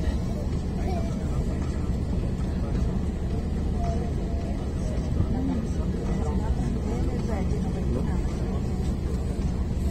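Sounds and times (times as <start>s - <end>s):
airliner cabin low rumble: 0.0s - 9.9s
people talking indistinctly: 0.0s - 9.9s.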